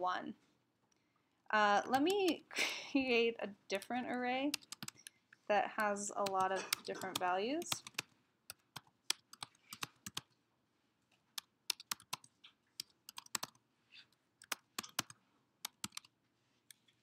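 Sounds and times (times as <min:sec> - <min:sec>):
keyboard typing: 0:01.9 - 0:02.5, 0:03.8 - 0:10.4, 0:11.3 - 0:16.9.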